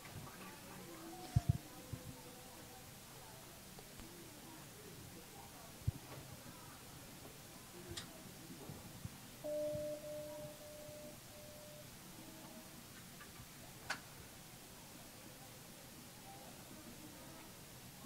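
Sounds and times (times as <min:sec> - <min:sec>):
short faint tones: 0:09.4 - 0:11.9
steady even tone: 0:09.4 - 0:11.9.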